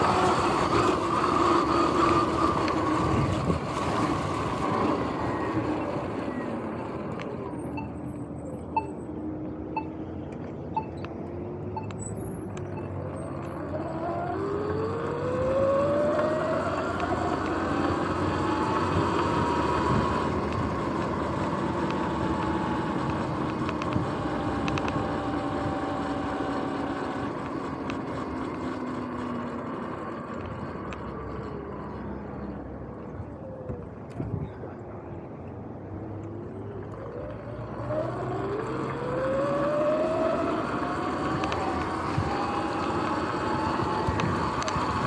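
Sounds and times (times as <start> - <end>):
wind and tyre noise: 0.0 - 45.0
electric motor whine: 13.0 - 31.4, 36.9 - 45.0.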